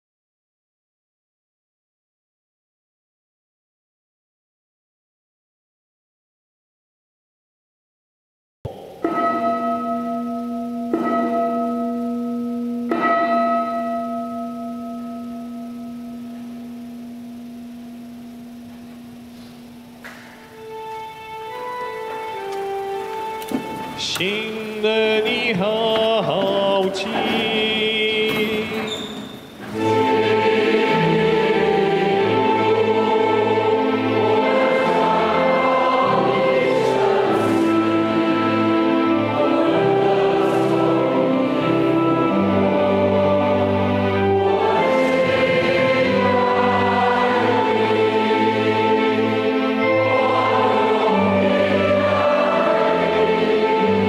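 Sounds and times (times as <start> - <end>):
bell ringing: 8.7 - 54.0
church choir singing in harmony: 8.8 - 19.1, 19.7 - 54.0.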